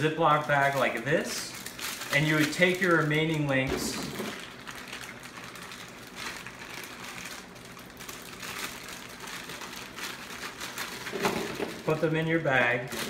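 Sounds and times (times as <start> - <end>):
plastic bags crinkling: 0.0 - 13.0.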